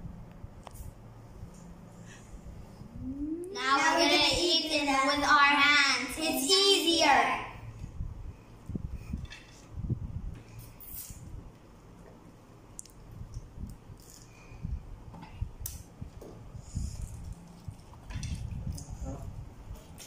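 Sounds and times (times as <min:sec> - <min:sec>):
small clicks and rustles: 0:16.9 - 0:19.1.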